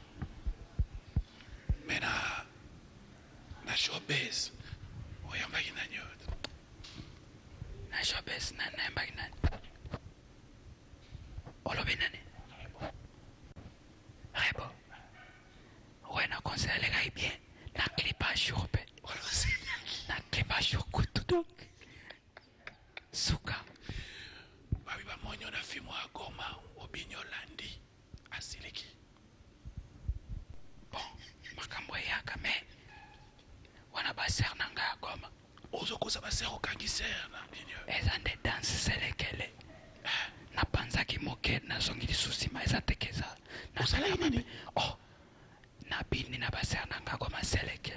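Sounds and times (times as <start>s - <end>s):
person talking: 43.8s - 44.5s.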